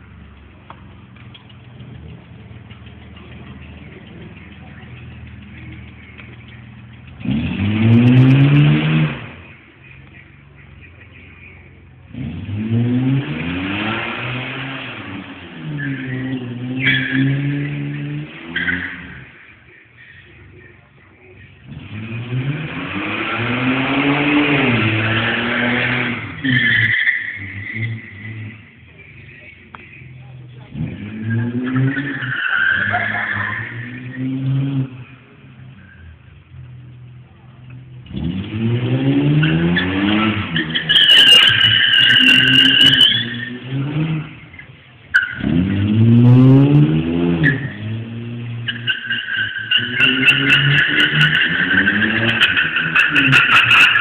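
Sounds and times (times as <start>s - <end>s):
car engine revving hard: 7.0s - 9.6s, 12.1s - 19.3s, 21.6s - 28.8s, 30.6s - 35.6s, 37.9s - 54.0s
tyres squealing: 23.0s - 34.5s, 39.2s - 45.8s, 47.3s - 54.0s.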